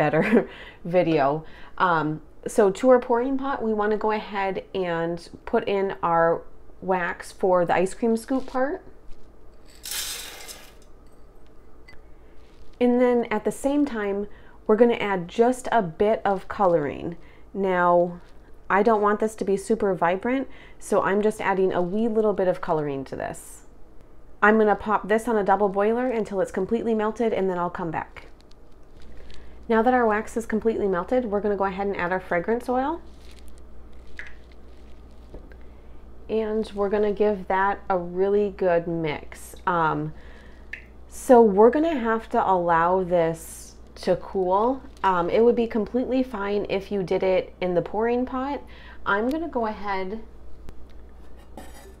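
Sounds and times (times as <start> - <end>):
low steady hum: 0.0 - 52.0
wax pellets pouring into metal pot: 9.8 - 10.8.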